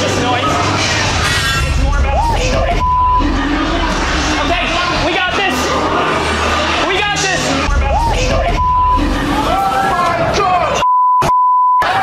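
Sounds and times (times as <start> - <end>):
people yelling and screaming: 0.0 - 10.8, 11.8 - 12.0
censor bleep: 2.8 - 3.2, 8.6 - 9.0, 10.8 - 11.8.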